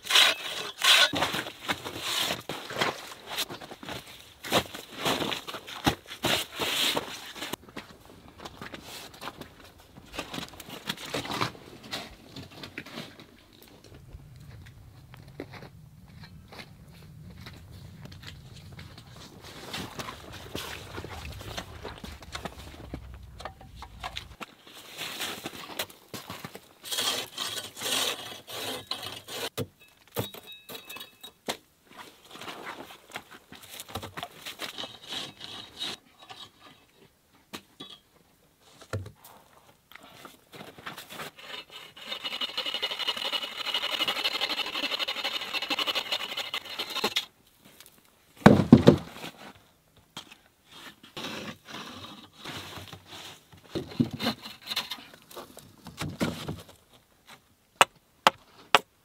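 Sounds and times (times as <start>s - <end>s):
hand saw cutting wood: 0.0s - 2.4s, 26.8s - 29.5s, 41.1s - 47.3s
wood scraping and knocking: 18.1s - 24.4s, 48.4s - 49.2s, 53.6s - 56.8s.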